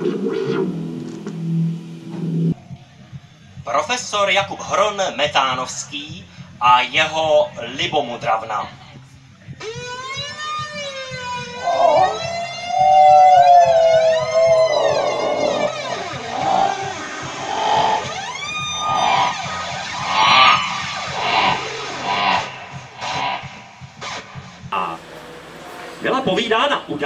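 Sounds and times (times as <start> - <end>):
theremin gliding notes: 9.6 - 27.0.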